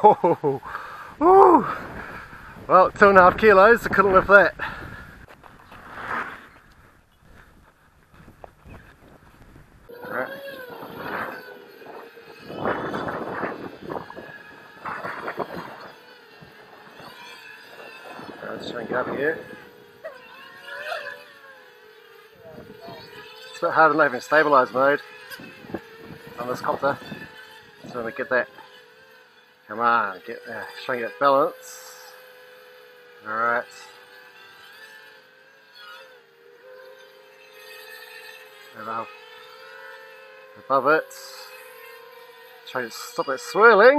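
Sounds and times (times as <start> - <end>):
propeller wash rushing: 0.0 - 20.1
quadcopter motors whining: 0.0 - 43.9.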